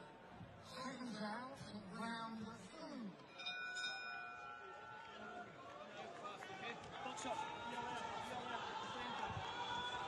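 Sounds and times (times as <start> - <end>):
boxing ring bell ringing: 3.3 - 4.7.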